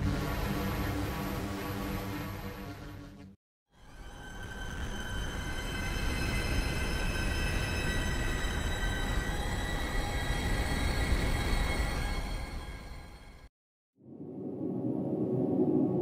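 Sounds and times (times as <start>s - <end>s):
synth drone of low noise: 3.8s - 12.6s.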